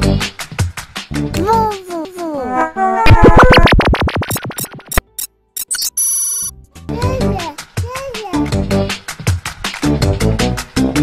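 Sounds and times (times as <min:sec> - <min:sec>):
beat-driven music: 0:02.5 - 0:07.6
short electronic clicks: 0:04.2 - 0:06.5.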